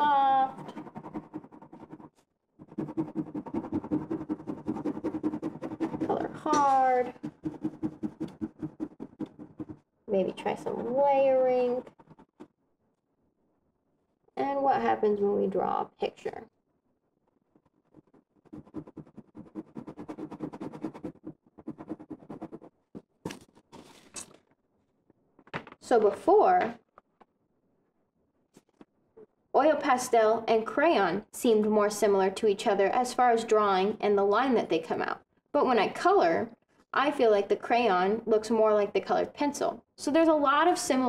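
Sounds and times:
crayon scribbling on paper: 0.0 - 9.8, 17.9 - 22.7.

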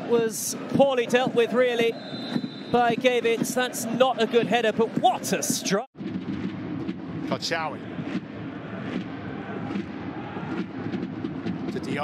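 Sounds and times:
stadium crowd rumble: 0.0 - 12.0.

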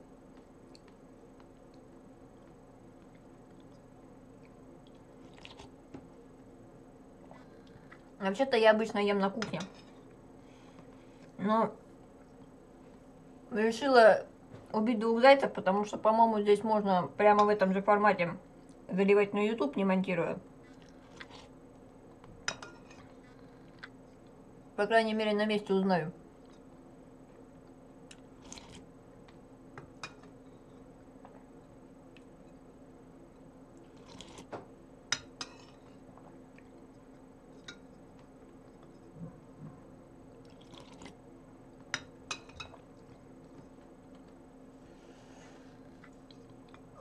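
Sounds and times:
soft eating sounds: 0.0 - 8.3, 9.2 - 13.5, 18.4 - 18.9, 20.4 - 24.8, 26.1 - 47.0.

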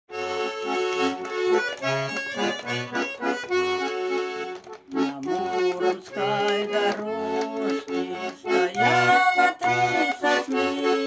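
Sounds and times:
button accordion playing chords: 0.1 - 11.0.

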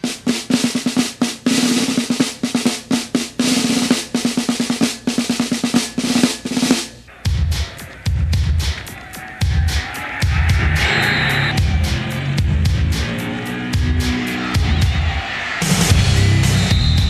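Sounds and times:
snare drum rolls: 0.0 - 17.0
deep bass beat: 7.1 - 17.0.

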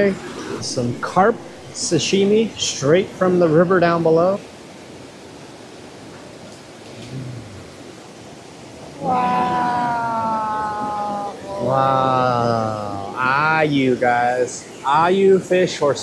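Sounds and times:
faint low murmur: 6.5 - 7.9
long vocal exclamations: 9.0 - 13.3.

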